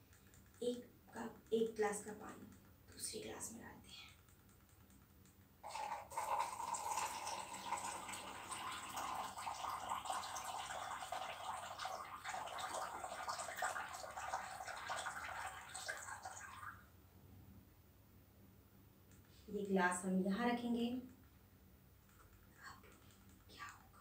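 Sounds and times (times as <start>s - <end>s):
water pouring into a container: 5.6s - 16.8s.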